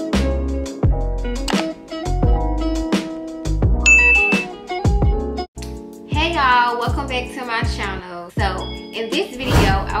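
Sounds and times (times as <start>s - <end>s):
intro music with a beat: 0.0s - 6.0s
bright notification ding: 3.9s - 4.5s.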